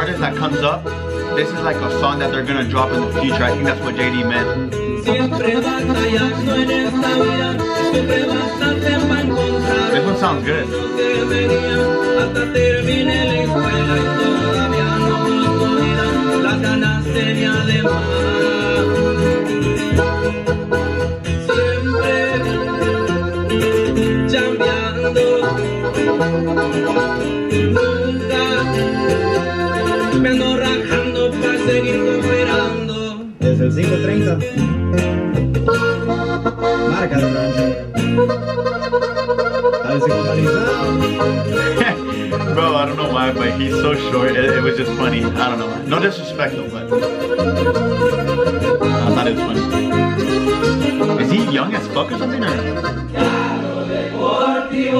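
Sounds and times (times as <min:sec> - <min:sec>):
man singing: 0:00.0 - 0:20.2, 0:21.4 - 0:26.2, 0:27.7 - 0:34.8, 0:39.8 - 0:54.9
accordion: 0:00.0 - 0:54.9
guitars: 0:00.0 - 0:54.9
regional mexican band music: 0:00.0 - 0:54.9.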